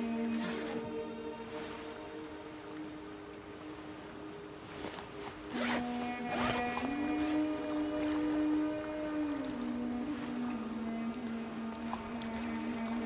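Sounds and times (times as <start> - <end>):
dramatic film score low notes: 0.0 - 13.0.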